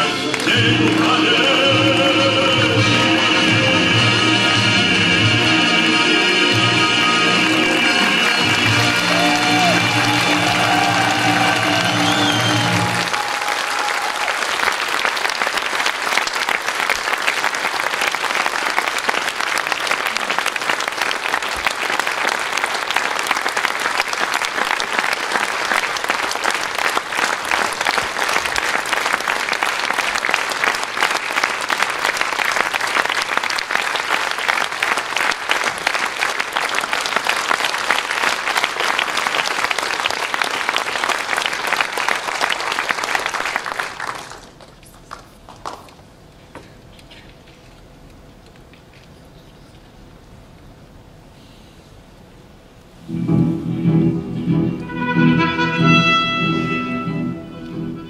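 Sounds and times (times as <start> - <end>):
music ending: 0.0 - 13.1, 53.0 - 58.0
audience applauding: 0.0 - 46.1.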